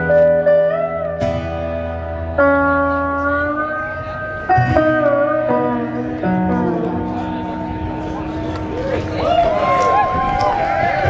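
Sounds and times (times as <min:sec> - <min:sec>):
live country band playing: 0:00.0 - 0:11.0.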